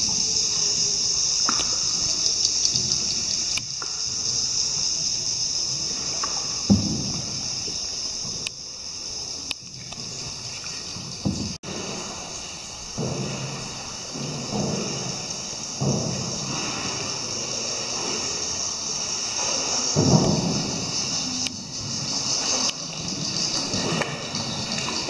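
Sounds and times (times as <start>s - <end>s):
high hiss: 0.0s - 25.0s
muffled low rumbles and knocks: 5.9s - 8.4s, 10.9s - 12.2s, 12.8s - 18.6s, 19.9s - 22.2s.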